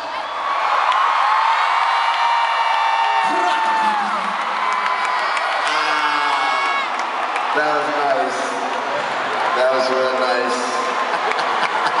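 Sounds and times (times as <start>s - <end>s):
concert crowd cheering and screaming: 0.0s - 12.0s.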